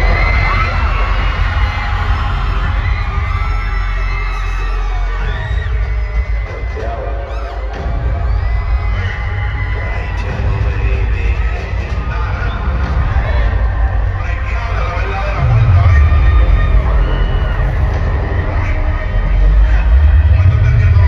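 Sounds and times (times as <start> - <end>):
crowd cheering and shouting: 0.0 - 21.0
heavy bass line: 0.0 - 21.0
live concert music: 0.0 - 21.0.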